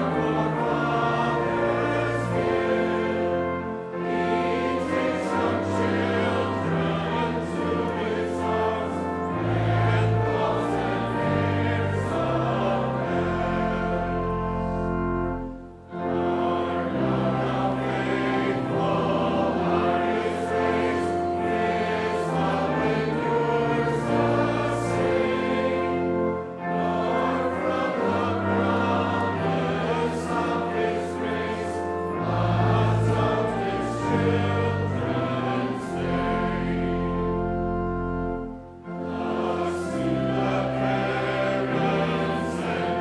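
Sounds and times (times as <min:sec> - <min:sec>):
congregation singing a hymn: 0:00.0 - 0:43.0.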